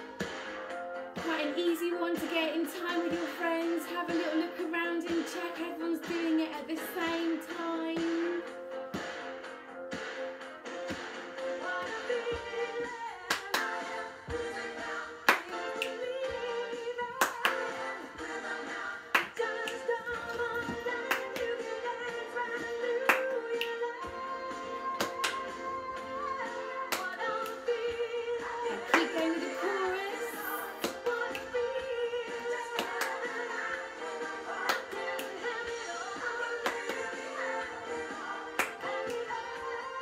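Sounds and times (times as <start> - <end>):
children's song with singing: 1.2 - 8.6, 11.4 - 40.0.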